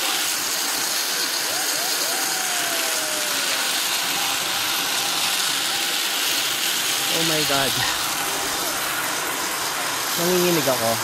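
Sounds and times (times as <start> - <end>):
cable ride rushing noise: 0.0 - 11.0.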